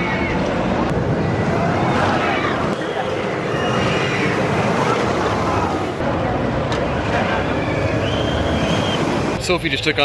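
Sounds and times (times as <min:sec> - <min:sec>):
roller coaster train rushing rumble: 0:00.1 - 0:10.0.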